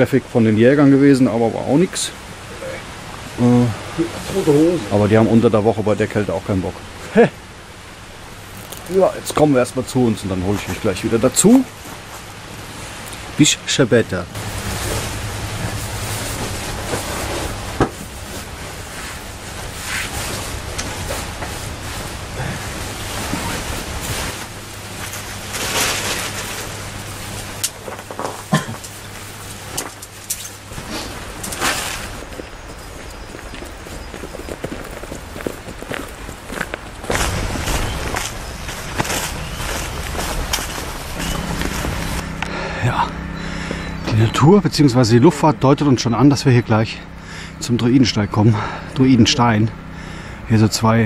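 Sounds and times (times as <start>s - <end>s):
bag and gear rustling: 14.4s - 42.4s.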